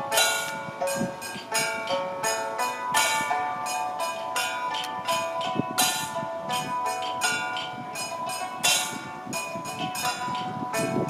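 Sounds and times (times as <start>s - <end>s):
sustained melodic line: 0.0s - 11.0s.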